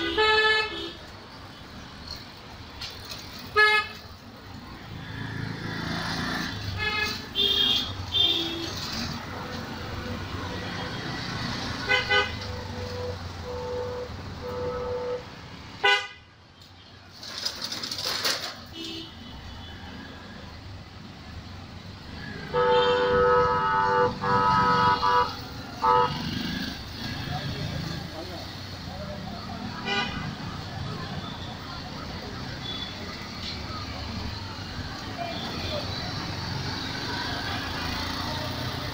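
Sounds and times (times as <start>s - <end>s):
hum of passing vehicles: 4.2s - 7.3s, 8.0s - 13.4s, 19.8s - 31.0s, 31.6s - 38.9s
vehicle horns honking: 6.7s - 8.8s, 11.8s - 16.3s, 22.4s - 26.4s, 29.8s - 30.4s.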